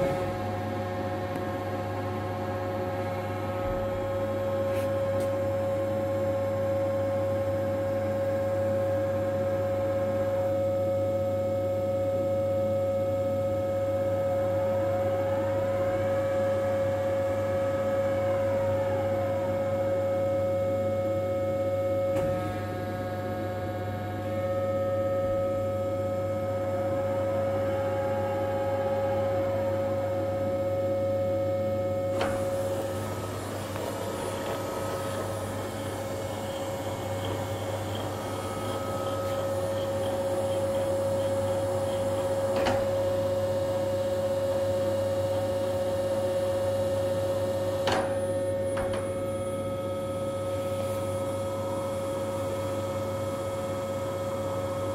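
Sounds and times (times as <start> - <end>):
gear grinding machine whine: 0.0 - 54.9
low machine hum: 0.0 - 54.9.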